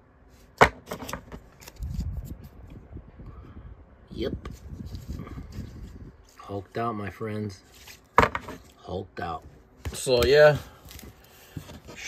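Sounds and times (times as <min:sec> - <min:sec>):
card handling rustle: 0:00.9 - 0:02.6, 0:09.7 - 0:12.0.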